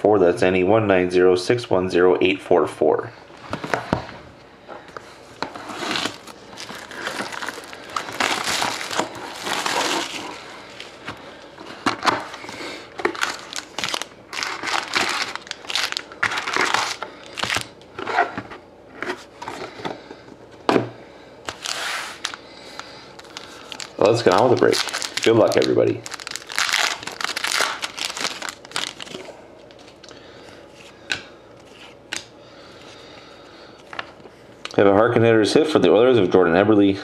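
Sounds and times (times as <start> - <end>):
crinkling plastic and foil wrappers: 5.7 - 17.8, 21.5 - 30.2.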